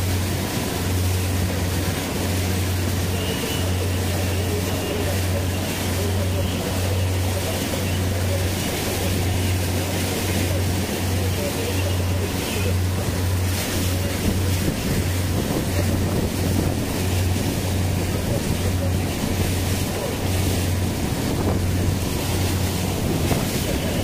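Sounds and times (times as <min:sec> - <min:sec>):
motorboat engine drone: 0:00.0 - 0:24.0
water rushing and splashing: 0:00.0 - 0:24.0
wind buffeting microphone: 0:05.3 - 0:24.0.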